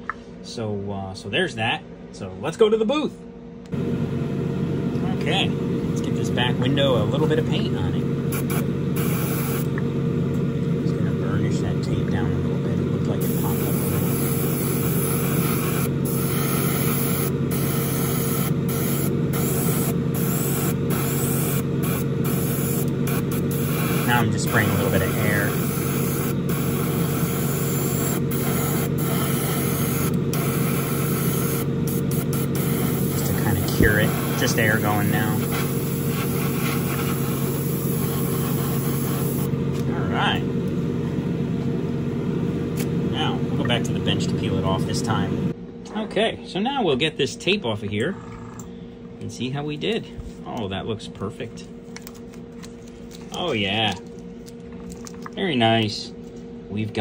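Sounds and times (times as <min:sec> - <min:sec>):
spray booth hum: 0:03.7 - 0:45.6
airbrush spraying hiss: 0:08.3 - 0:09.7, 0:13.2 - 0:39.5.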